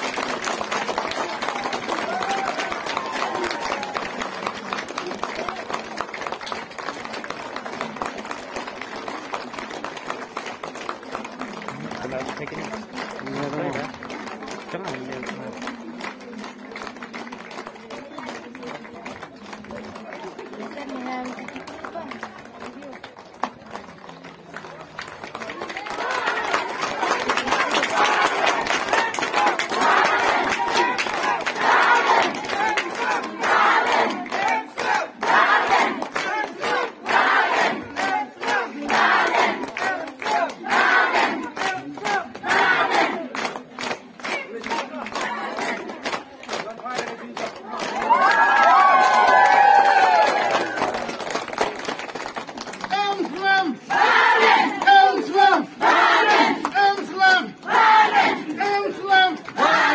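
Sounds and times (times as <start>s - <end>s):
hand-clapping: 0.0s - 59.9s
large crowd murmuring: 0.0s - 59.9s
crowd shouting in rhythm: 26.0s - 43.3s, 53.4s - 59.9s.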